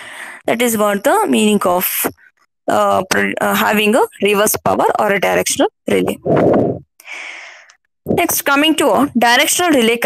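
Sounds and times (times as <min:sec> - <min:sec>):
woman speaking: 0:00.4 - 0:06.8, 0:08.1 - 0:10.0.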